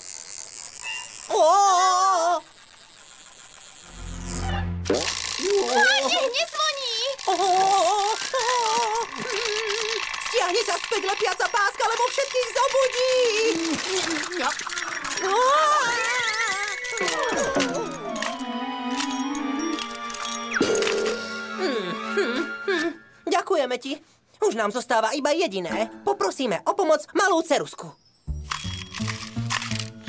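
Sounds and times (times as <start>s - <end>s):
alarm clock wavering buzz: 2.5s - 13.4s, 14.3s - 21.6s
cartoon character voice: 5.4s - 10.5s.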